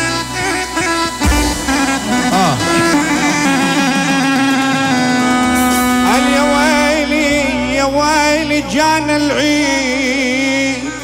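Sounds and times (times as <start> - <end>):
reed pipe playing quick notes: 0.0 - 7.9
low drone note: 1.0 - 8.6.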